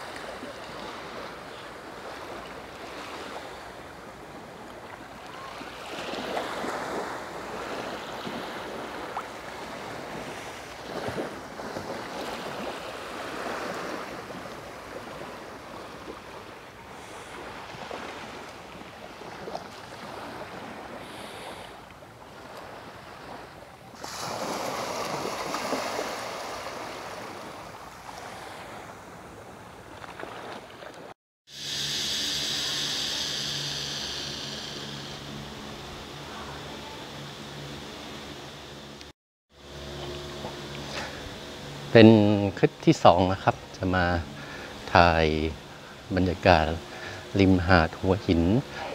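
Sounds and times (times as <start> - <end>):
sea waves washing on sand: 0.0 - 39.1.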